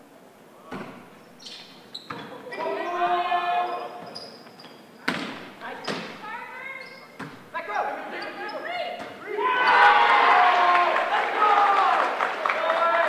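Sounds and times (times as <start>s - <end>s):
players shouting and cheering: 2.4s - 4.0s, 7.6s - 13.0s.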